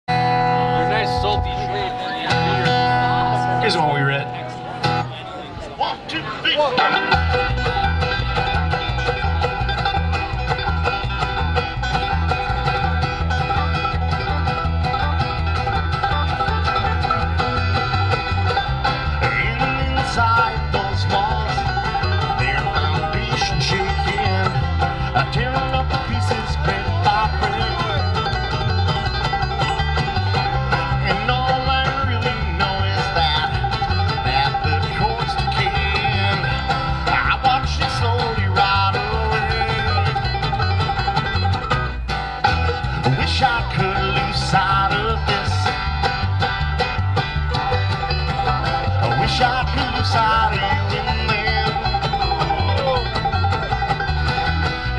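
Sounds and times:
upright bass: 0.0s - 54.9s
acoustic guitar: 0.1s - 54.9s
banjo: 0.1s - 54.9s.

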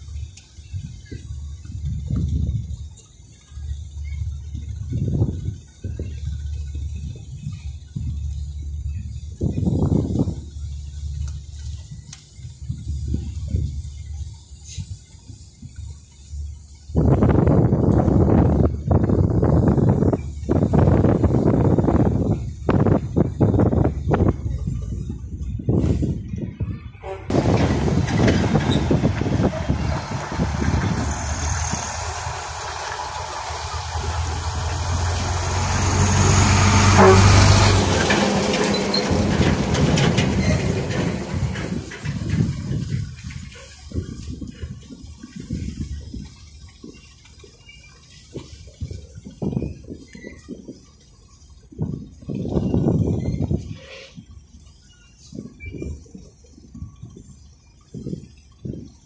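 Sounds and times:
wind buffeting microphone: 0.0s - 59.0s
passing vehicle engine: 27.0s - 42.8s.

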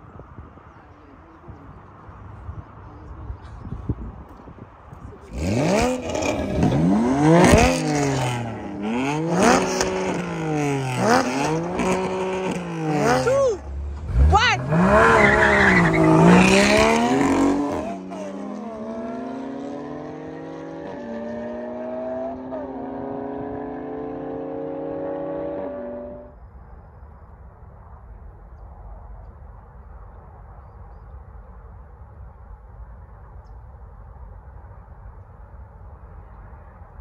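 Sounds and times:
sports car engines revving: 5.0s - 26.3s
cars accelerating away: 5.3s - 26.3s.

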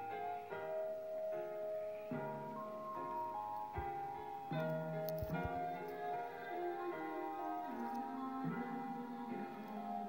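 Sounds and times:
record playing sustained chords: 0.0s - 10.0s.

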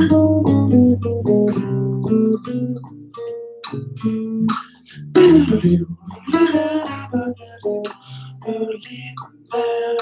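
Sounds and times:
looped bass line: 3.7s - 7.9s.

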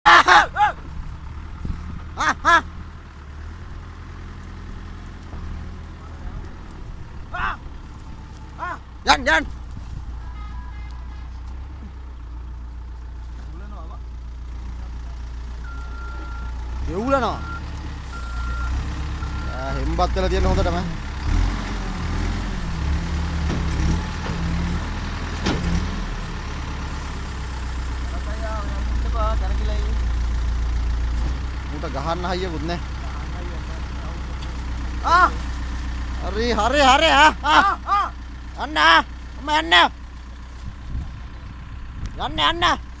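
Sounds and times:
person shouting: 0.0s - 0.9s, 2.2s - 2.7s, 7.3s - 7.7s, 8.6s - 9.5s, 35.0s - 35.4s, 37.0s - 39.9s
distant shouting voices: 0.0s - 1.0s, 4.8s - 12.2s, 32.9s - 35.6s, 36.3s - 40.0s
heavy machine engine humming: 0.4s - 43.0s.

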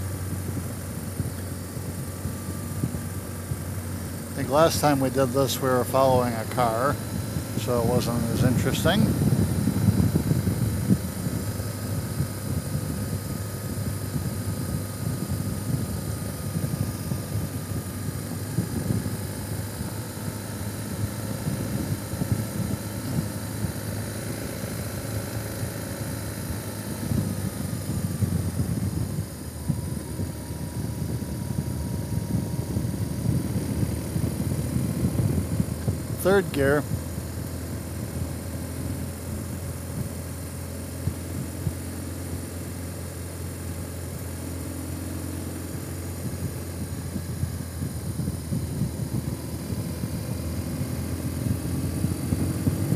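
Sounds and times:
faint motorcycle engine whine: 0.0s - 52.9s
wind rumble on microphone: 0.0s - 52.9s.

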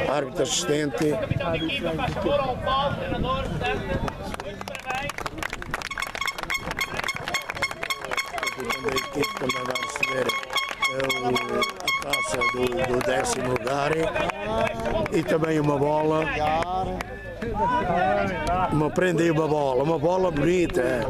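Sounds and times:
fast even ticking: 5.9s - 13.4s
steady high tone: 6.0s - 13.1s
people talking: 6.4s - 21.0s.

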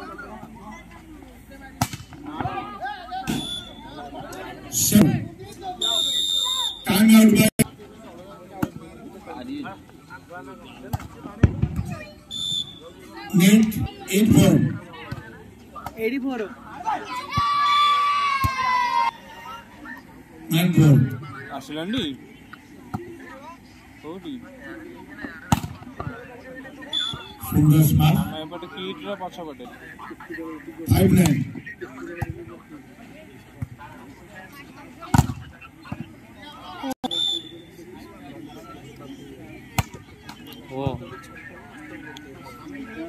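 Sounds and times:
players and crowd shouting: 2.3s - 7.6s, 16.4s - 21.2s.

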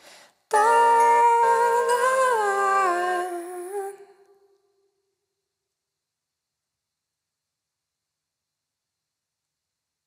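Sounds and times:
hummed vocal line: 0.5s - 4.3s.

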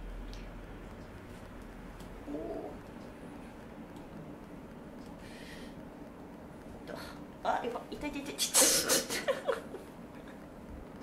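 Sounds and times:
woman moaning: 2.3s - 2.8s.

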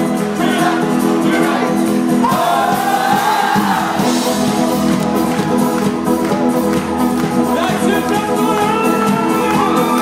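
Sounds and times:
acoustic guitar: 0.0s - 10.0s
electric bass: 0.0s - 10.0s.

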